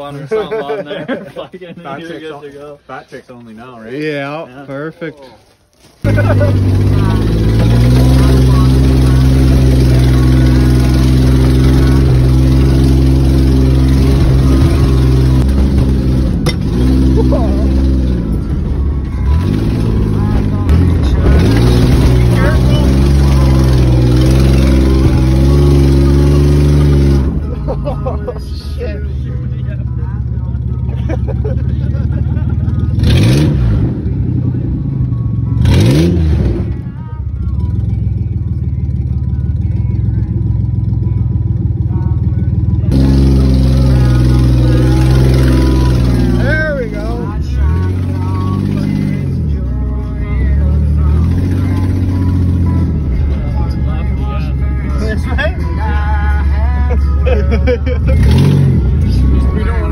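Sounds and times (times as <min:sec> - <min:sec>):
engine running without exhaust: 0:06.0 - 0:59.9.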